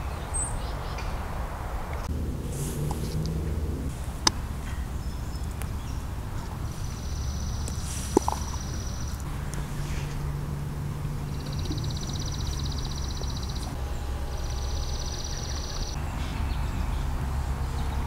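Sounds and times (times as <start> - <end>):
low steady rumble: 0.0 - 18.0.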